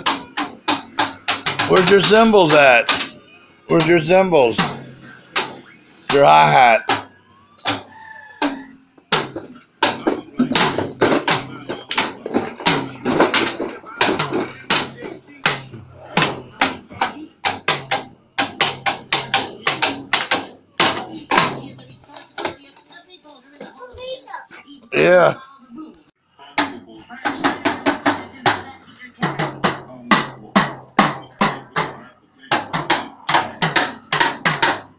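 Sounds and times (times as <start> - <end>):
toy drum hits: 0.0 - 21.8, 26.6 - 34.9.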